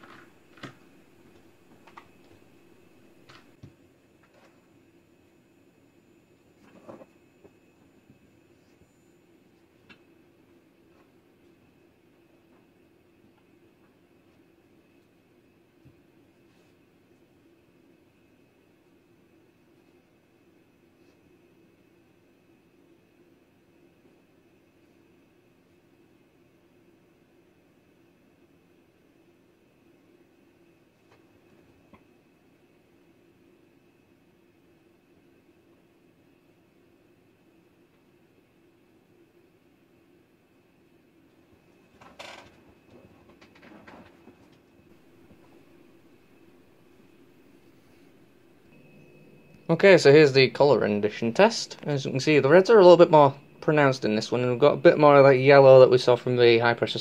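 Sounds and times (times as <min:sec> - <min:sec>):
thin high whine: 0:00.0 - 0:13.0, 0:44.4 - 0:57.0
faint low hum: 0:00.0 - 0:57.0.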